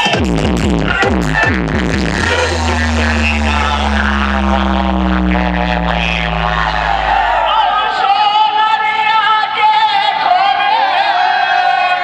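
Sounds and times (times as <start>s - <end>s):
loud dance music: 0.0s - 8.2s
deep bass drone: 0.3s - 8.2s
falling tones: 1.7s - 8.2s.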